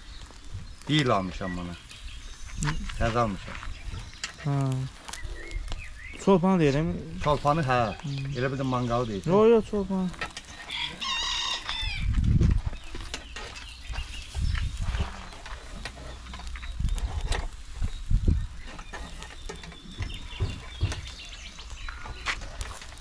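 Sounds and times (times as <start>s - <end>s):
rooster crowing: 10.6s - 12.1s
low thumps: 13.9s - 21.3s.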